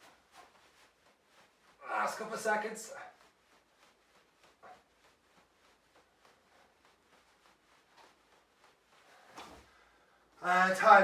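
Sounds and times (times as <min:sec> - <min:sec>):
body rustling on exercise mat: 0:00.0 - 0:11.0.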